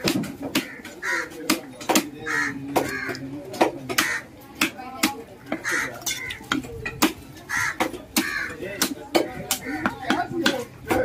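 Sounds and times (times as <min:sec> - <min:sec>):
harsh cawing calls: 0:00.5 - 0:01.6, 0:02.2 - 0:03.2, 0:03.9 - 0:04.3, 0:05.4 - 0:06.4, 0:07.5 - 0:08.6, 0:09.5 - 0:10.1.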